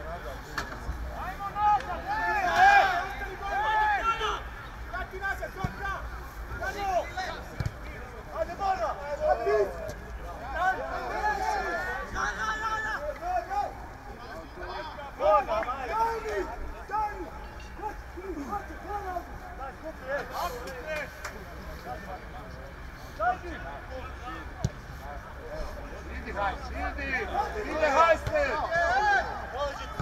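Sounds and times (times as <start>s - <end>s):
players shouting: 1.2s - 21.0s, 26.0s - 30.0s.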